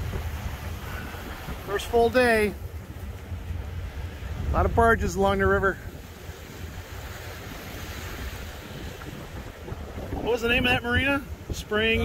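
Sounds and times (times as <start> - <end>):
rushing water: 0.0 - 12.0
wind buffeting microphone: 0.0 - 12.0.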